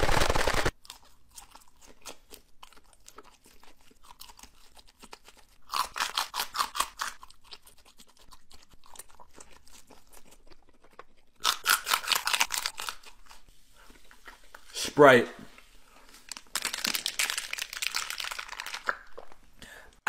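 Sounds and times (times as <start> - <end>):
crunchy chewing: 0.7 - 14.6, 15.9 - 19.4.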